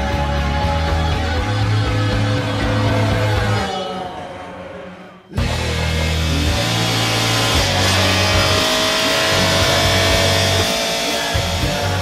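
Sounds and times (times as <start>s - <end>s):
faint racing car engine: 0.0s - 12.0s
hard rock music: 0.0s - 12.0s.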